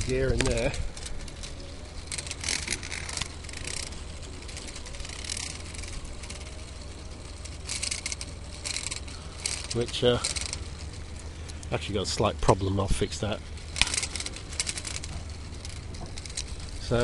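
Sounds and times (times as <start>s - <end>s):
plastic gears clicking and rattling: 0.0s - 17.0s
steady low hum: 0.0s - 17.0s.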